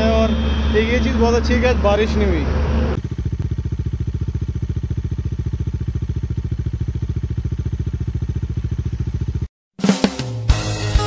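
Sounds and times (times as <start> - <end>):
motorcycle engine idling: 0.0 - 9.5.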